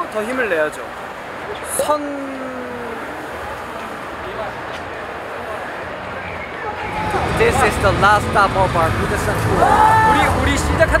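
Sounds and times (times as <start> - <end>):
faint distant voices murmuring: 0.0 - 11.0.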